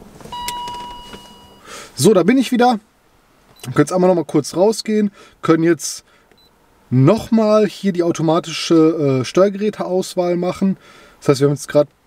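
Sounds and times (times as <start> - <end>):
electronic chime: 0.3 - 1.6.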